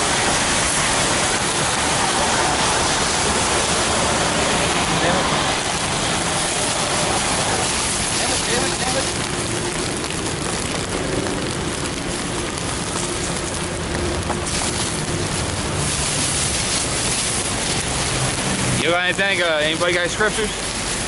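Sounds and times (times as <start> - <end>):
rain pattering on plastic: 0.0 - 21.0.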